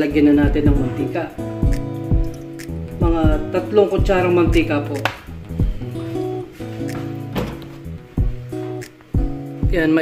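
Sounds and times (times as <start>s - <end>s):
soft instrumental music: 0.0s - 10.0s.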